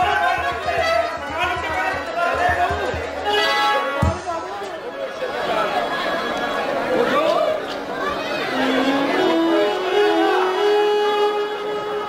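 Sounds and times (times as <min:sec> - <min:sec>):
held musical note: 0:08.4 - 0:12.0.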